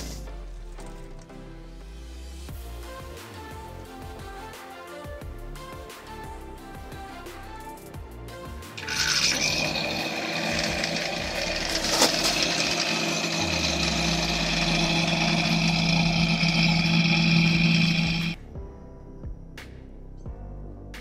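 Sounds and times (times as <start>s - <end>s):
submersible pump motor hum: 8.8s - 18.4s.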